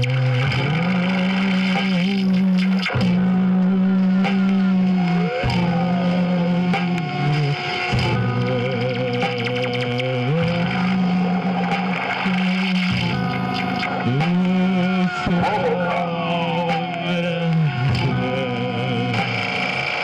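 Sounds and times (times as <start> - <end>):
layered electronic drones: 0.0 - 20.0
wavering tone: 0.0 - 20.0.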